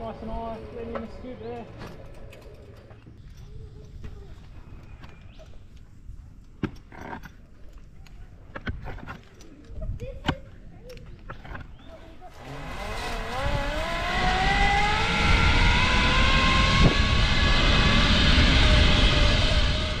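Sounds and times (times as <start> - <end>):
zipline trolley whine: 12.3 - 20.0
wind rushing on microphone: 12.4 - 20.0.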